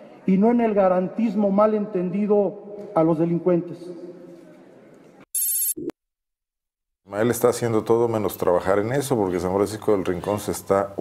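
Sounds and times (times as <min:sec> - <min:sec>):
electronic telephone ringing tone: 0:05.4 - 0:05.9.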